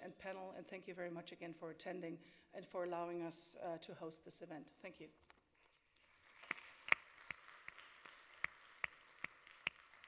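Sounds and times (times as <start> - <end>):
light applause: 6.0 - 10.0
sharp individual claps: 6.0 - 10.0.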